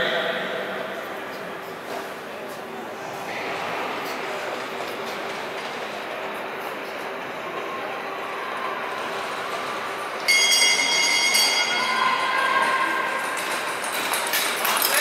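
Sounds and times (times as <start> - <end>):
high-pitched ringing: 10.2 - 13.6.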